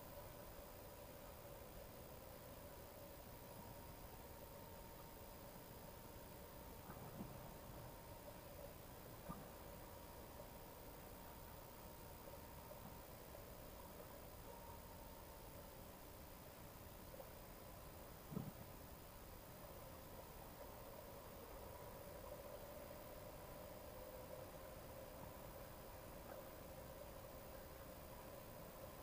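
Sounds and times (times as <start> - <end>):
faint steady hum: 0.0 - 29.0.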